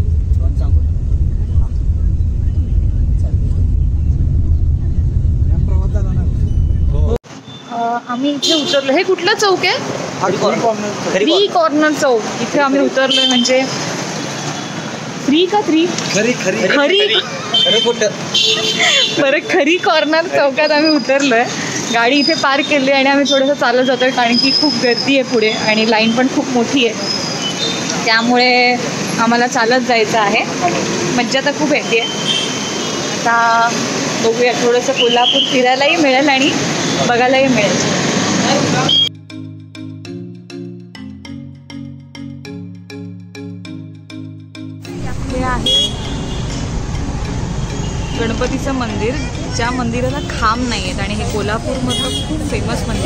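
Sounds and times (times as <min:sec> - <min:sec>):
high-pitched whine: 0:00.0 - 0:07.2
traffic rumble: 0:00.0 - 0:39.3, 0:44.9 - 0:53.0
woman talking: 0:07.7 - 0:09.8, 0:15.3 - 0:16.0, 0:18.8 - 0:27.1, 0:28.0 - 0:32.1, 0:45.0 - 0:45.8, 0:48.2 - 0:53.0.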